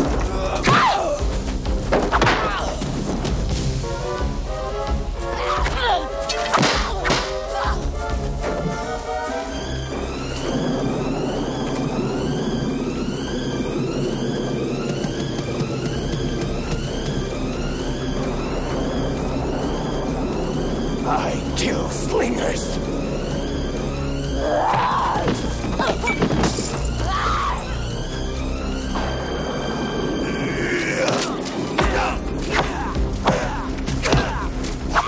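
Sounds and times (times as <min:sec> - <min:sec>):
film score music: 0:00.0 - 0:35.0
rain: 0:00.0 - 0:35.0.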